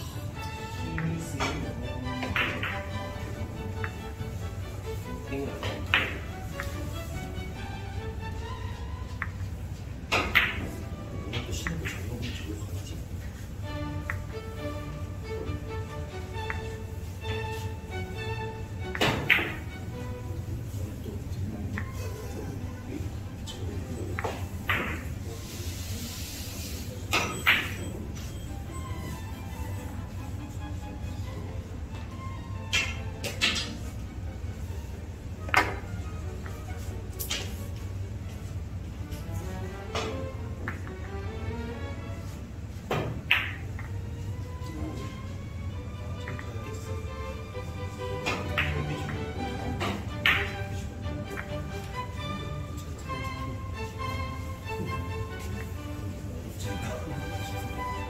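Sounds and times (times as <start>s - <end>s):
soft background music: 0.0s - 58.0s
billiard balls clicking: 2.2s - 4.2s, 5.6s - 7.0s, 9.1s - 9.5s, 10.1s - 10.8s, 14.0s - 14.6s, 16.4s - 16.8s, 18.9s - 19.8s, 24.1s - 25.2s, 27.2s - 27.9s, 35.4s - 36.6s, 40.0s - 41.1s, 43.0s - 44.0s, 46.2s - 46.8s, 48.2s - 52.2s.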